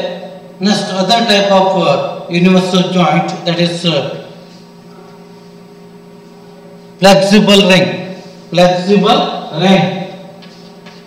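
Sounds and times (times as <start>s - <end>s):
faint hum with hiss: 0.0s - 11.0s.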